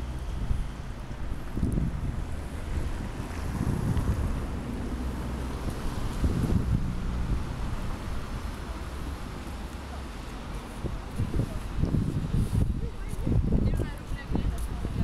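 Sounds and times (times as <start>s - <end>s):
wind buffeting microphone: 0.0s - 8.6s, 10.1s - 15.0s
street traffic: 0.0s - 15.0s.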